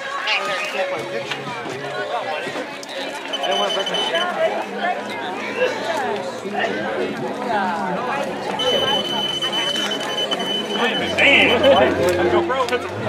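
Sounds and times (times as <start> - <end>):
chatter of voices: 0.0 - 13.0
high electronic beep: 3.3 - 4.3, 8.6 - 11.9.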